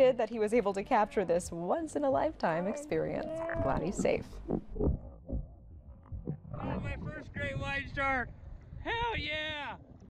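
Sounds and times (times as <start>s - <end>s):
rumble of water: 2.2s - 10.0s
wind on microphone: 3.0s - 10.0s
man whooping and yelling: 8.8s - 9.8s.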